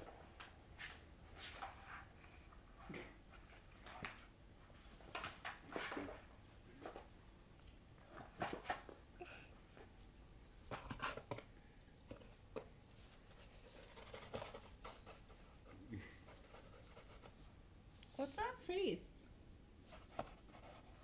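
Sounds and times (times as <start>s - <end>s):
cat claws scratching cardboard: 10.3s - 18.8s.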